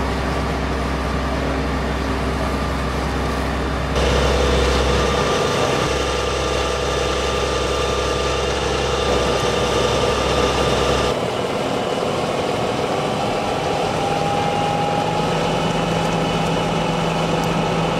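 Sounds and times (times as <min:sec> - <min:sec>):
fire engine pump drone: 0:00.0 - 0:17.9.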